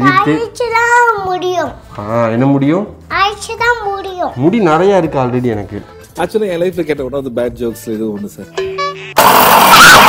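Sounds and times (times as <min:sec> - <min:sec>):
mixer grinder running: 0:09.2 - 0:10.0.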